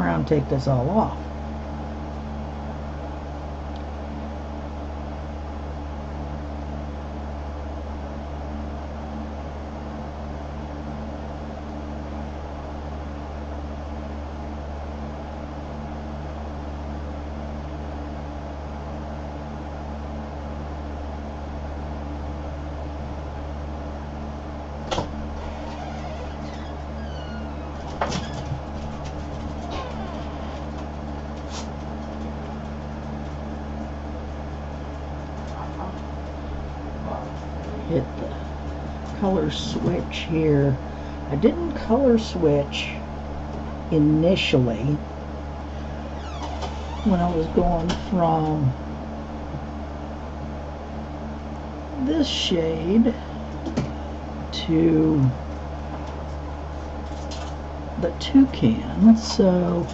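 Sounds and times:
low mechanical hum: 0.0s - 59.9s.

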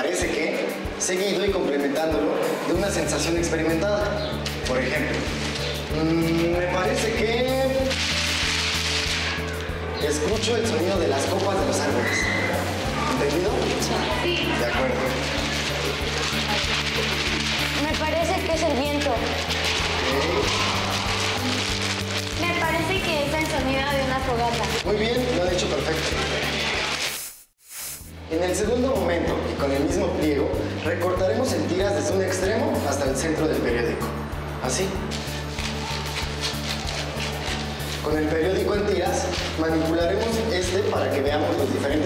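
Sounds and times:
background music with low beat: 0.0s - 27.0s, 28.0s - 42.0s
newspaper rustling and flapping: 3.0s - 27.5s, 34.7s - 42.0s
scissors cutting paper: 35.1s - 38.2s.

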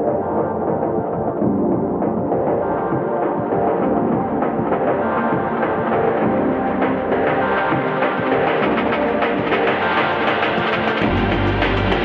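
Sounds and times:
background music with drums: 1.7s - 12.0s.

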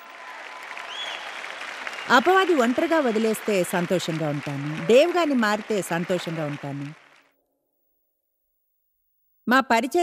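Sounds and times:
large audience applauding: 0.0s - 7.4s.

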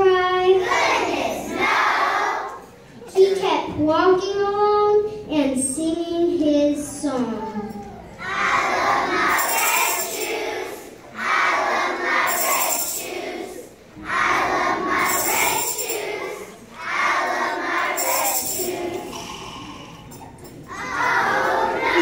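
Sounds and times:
children chanting in unison: 0.0s - 2.6s, 8.2s - 19.9s, 20.7s - 22.0s.

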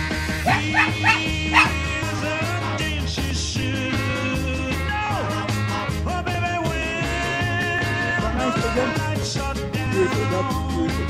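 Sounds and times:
rock song playing: 0.0s - 11.0s
dog yipping: 0.5s - 1.8s.

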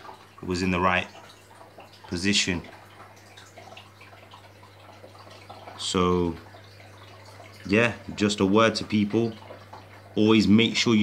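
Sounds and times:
water trickling and dripping: 0.0s - 11.0s.

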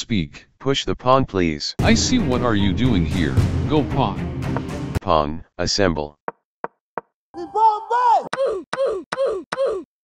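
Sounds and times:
sharp knocks: 4.4s - 4.9s.

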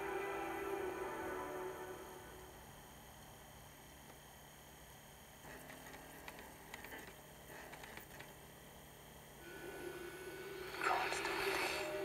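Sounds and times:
low drone: 9.4s - 12.0s.

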